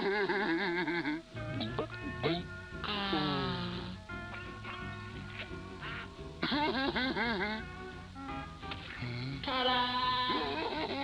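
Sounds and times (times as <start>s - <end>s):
distorted cartoon laugh: 0.0s - 1.3s, 5.9s - 7.8s, 10.1s - 11.0s
background music: 0.0s - 11.0s.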